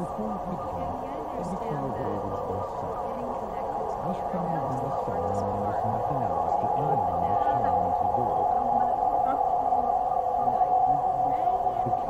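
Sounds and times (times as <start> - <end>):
loud steady drone: 0.0 - 12.0
low garbled voices: 0.0 - 12.0.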